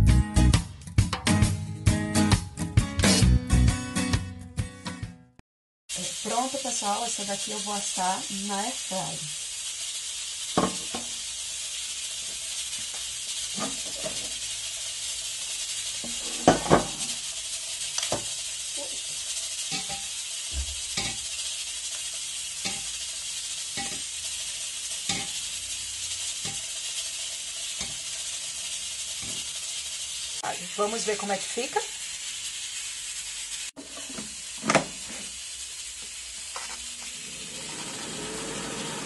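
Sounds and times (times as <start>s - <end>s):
pressure cooker venting steam: 5.9s - 39.0s
metal tins clinking: 12.2s - 14.5s, 15.9s - 21.3s, 22.6s - 22.9s, 23.7s - 24.2s, 25.0s - 25.6s.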